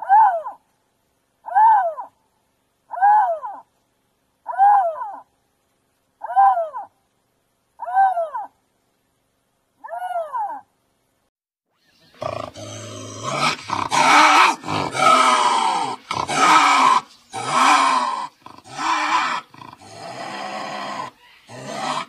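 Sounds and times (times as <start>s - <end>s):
lynx rasping calls: 11.8s - 22.0s.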